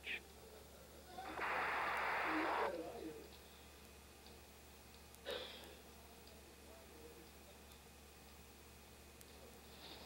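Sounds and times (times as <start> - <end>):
radio hiss burst: 1.2 - 2.8.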